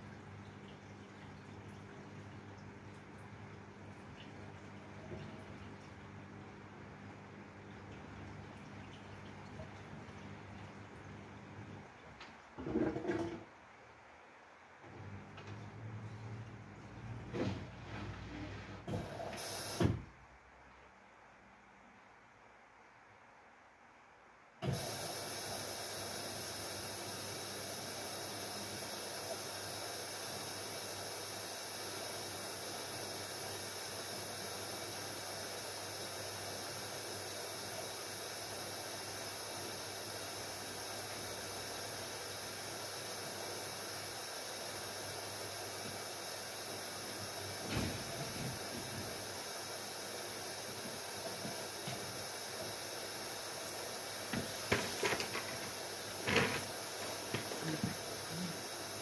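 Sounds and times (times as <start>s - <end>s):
water rushing into washing machine: 0.0s - 13.6s, 14.9s - 20.1s, 24.6s - 59.0s
water valve opening: 47.5s - 49.4s, 53.7s - 58.9s.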